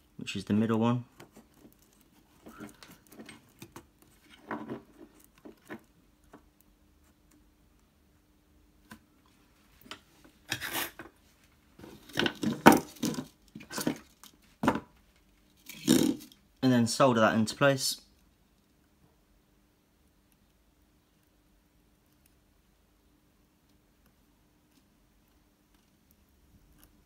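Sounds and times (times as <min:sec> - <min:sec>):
faint steady hum: 0:00.0 - 0:27.0
wire clicking and rustling: 0:01.1 - 0:07.4
clattering and rustling on bench: 0:02.4 - 0:05.9, 0:11.8 - 0:14.9.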